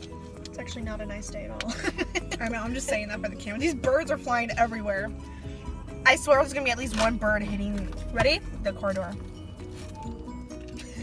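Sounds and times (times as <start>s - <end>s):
music on car radio: 0.0s - 11.0s.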